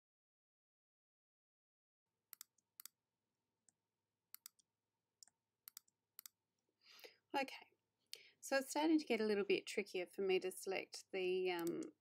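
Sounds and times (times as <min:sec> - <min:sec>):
computer mouse clicks: 0:02.3 - 0:03.0, 0:04.3 - 0:04.6, 0:05.7 - 0:06.4, 0:11.6 - 0:11.9.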